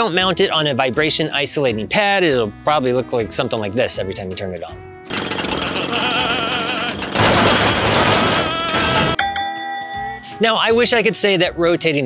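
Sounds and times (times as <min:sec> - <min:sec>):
cartoon jackhammer clattering: 0:05.1 - 0:09.2
steady ringing tone: 0:05.1 - 0:10.6
man yelling: 0:08.2 - 0:09.2.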